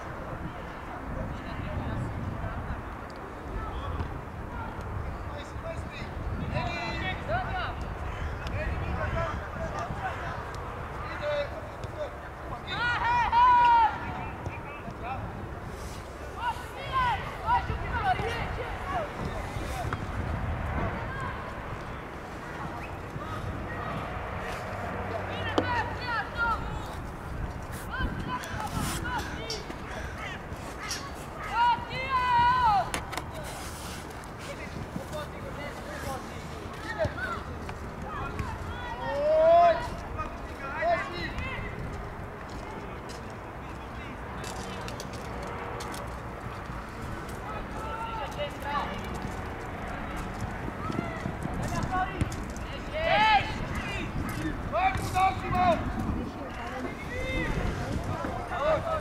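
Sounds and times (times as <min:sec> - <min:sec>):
players shouting: 0:06.8 - 0:14.9, 0:16.2 - 0:20.0, 0:20.9 - 0:27.1, 0:27.8 - 0:33.5, 0:34.5 - 0:41.8, 0:50.7 - 0:59.0.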